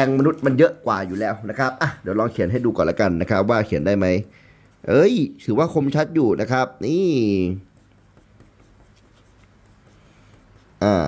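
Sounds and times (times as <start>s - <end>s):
pencil scratching on paper: 4.8s - 11.0s.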